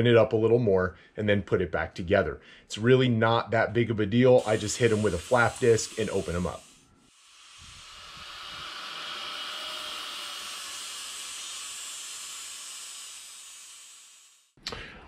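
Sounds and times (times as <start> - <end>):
angle grinder grinding steel: 4.4 - 14.5.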